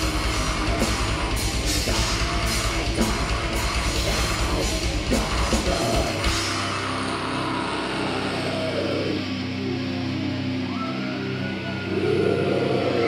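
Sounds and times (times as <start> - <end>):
distorted electric guitar and bass: 0.0 - 13.0.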